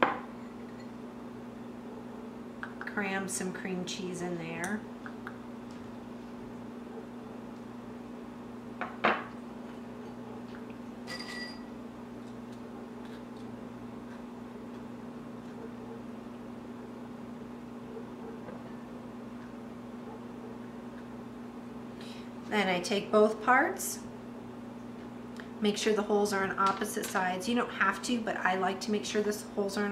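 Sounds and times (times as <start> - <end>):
steady low hum: 0.0 - 29.9.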